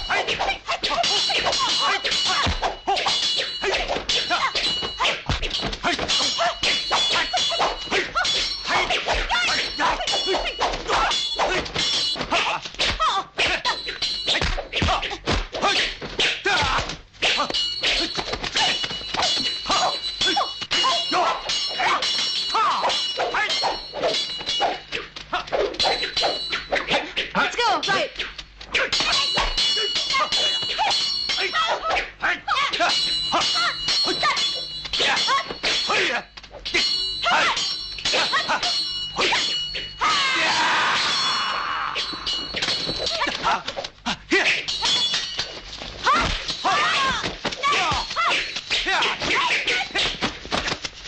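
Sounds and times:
fighting shouts and grunts: 0:00.0 - 0:11.7, 0:19.7 - 0:23.8, 0:46.0 - 0:50.2
high metallic ringing: 0:00.0 - 0:12.4, 0:13.6 - 0:14.8, 0:17.2 - 0:28.2, 0:28.8 - 0:43.4, 0:44.5 - 0:49.2
sword blades clashing: 0:00.0 - 0:50.9.

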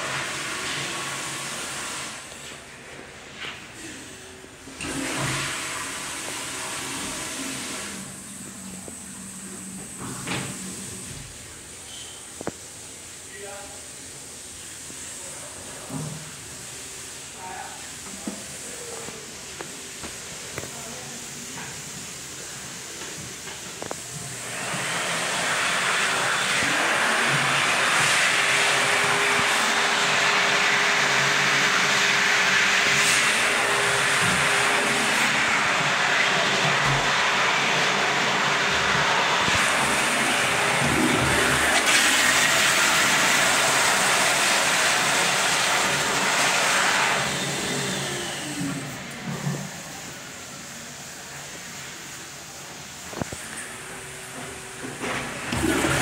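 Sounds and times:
toilet flushing water rush: 0:00.0 - 0:13.2, 0:13.8 - 0:56.0.

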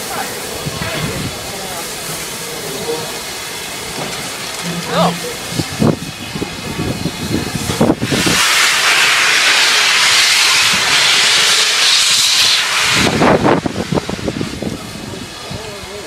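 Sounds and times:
loud hiss of steam: 0:00.0 - 0:16.0
steam locomotive chuffing: 0:00.0 - 0:16.0.

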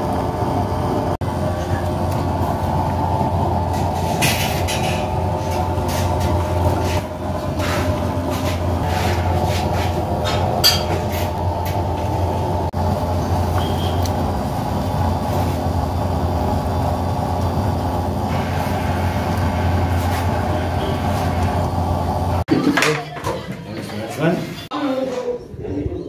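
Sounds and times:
machine rumble with low hum: 0:00.0 - 0:22.5.

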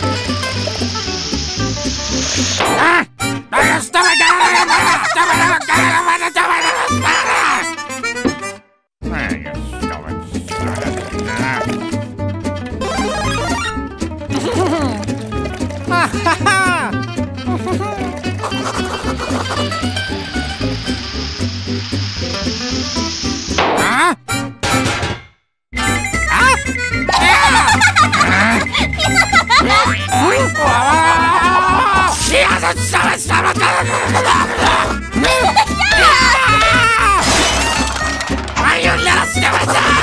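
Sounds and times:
bouncy cartoon music: 0:00.0 - 0:25.2, 0:25.8 - 0:40.0
hissing noise: 0:00.3 - 0:02.8, 0:18.5 - 0:23.9
comic sound effects: 0:02.6 - 0:03.1, 0:12.8 - 0:15.0, 0:22.3 - 0:24.3, 0:25.9 - 0:40.0.

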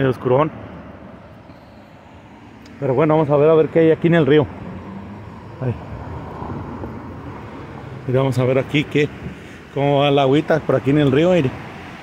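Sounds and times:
outdoor vehicle noise: 0:00.0 - 0:12.0.

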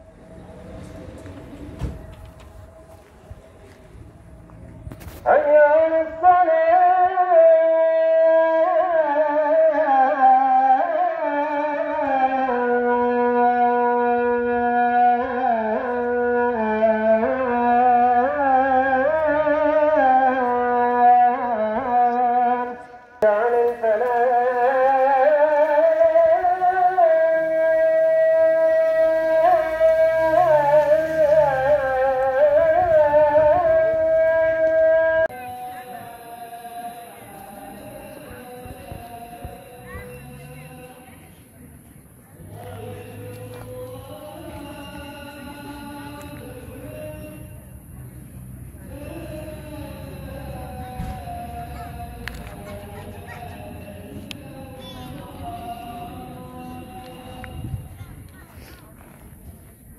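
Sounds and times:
man chanting: 0:05.2 - 0:41.3, 0:42.5 - 0:48.2, 0:48.8 - 0:58.0.

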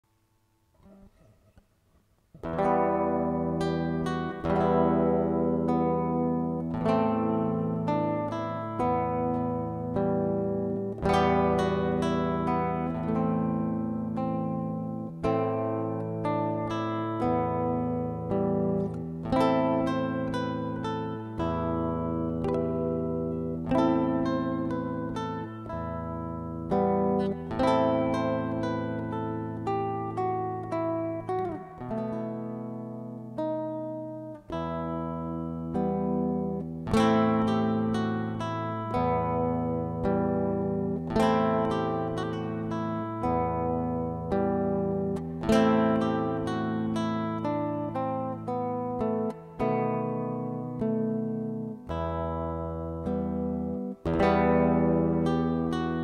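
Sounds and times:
fingerstyle nylon-string guitar: 0:00.7 - 0:56.0.

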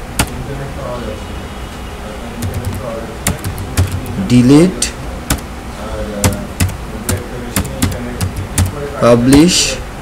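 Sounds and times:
computer keyboard key clicks: 0:02.4 - 0:04.1, 0:06.2 - 0:06.8, 0:07.6 - 0:08.8.

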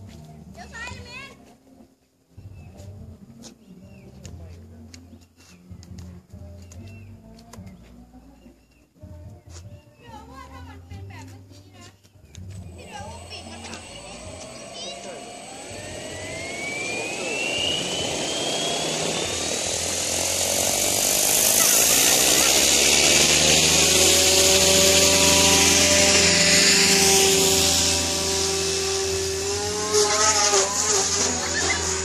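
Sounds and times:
rc helicopter motor whine: 0:12.6 - 0:32.0
rotor hiss: 0:12.7 - 0:32.0.

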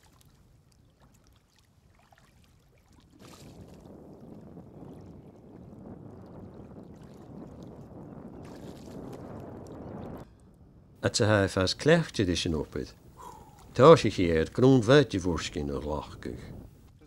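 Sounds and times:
seawater sloshing around boots: 0:00.0 - 0:03.9.

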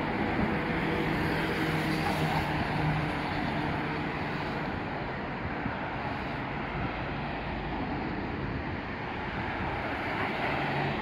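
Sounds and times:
cars passing: 0:00.0 - 0:11.0
road noise: 0:00.0 - 0:11.0.

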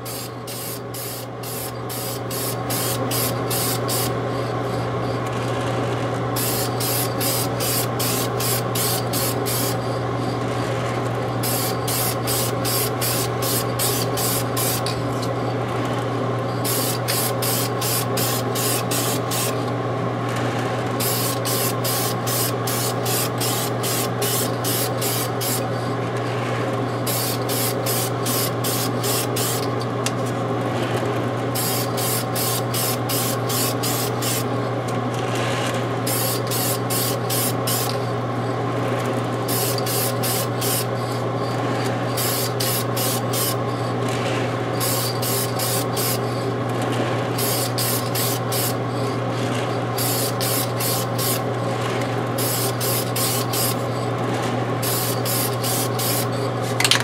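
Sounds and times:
spray can hissing: 0:00.0 - 0:04.1, 0:06.4 - 0:09.8, 0:11.4 - 0:15.0, 0:16.7 - 0:19.5, 0:21.0 - 0:25.6, 0:31.6 - 0:34.5, 0:36.1 - 0:38.0, 0:54.8 - 0:56.3.

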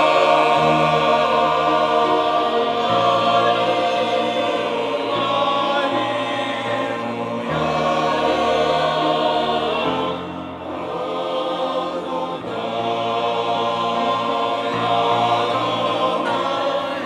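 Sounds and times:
mixed choir singing a hymn: 0:00.0 - 0:17.0.

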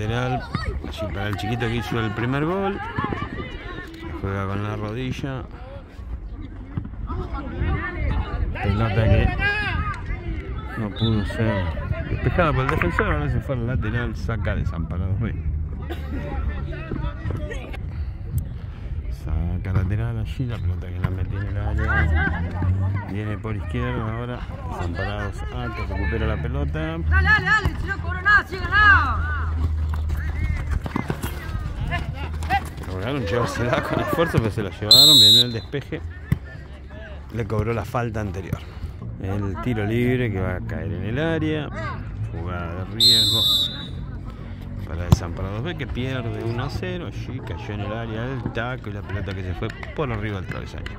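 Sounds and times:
running feet and ball knocks: 0:29.5 - 0:34.6
people shouting: 0:43.0 - 0:44.0.

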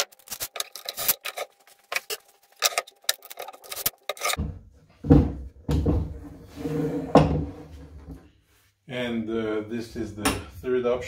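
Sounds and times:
wood scraping: 0:00.0 - 0:08.2.

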